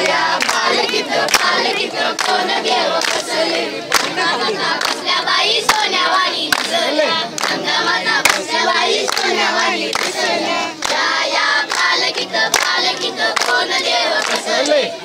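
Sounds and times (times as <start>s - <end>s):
hand claps: 0.0s - 14.8s
boys chanting in unison: 0.0s - 15.0s.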